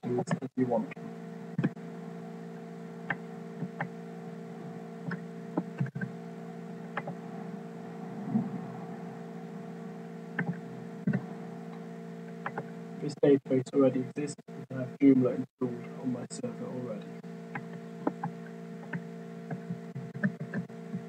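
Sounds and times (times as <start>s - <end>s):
electrical hum: 0.0s - 21.0s.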